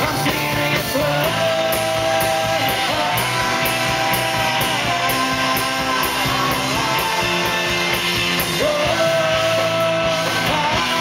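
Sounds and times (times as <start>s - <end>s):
rock band playing: 0.0s - 11.0s.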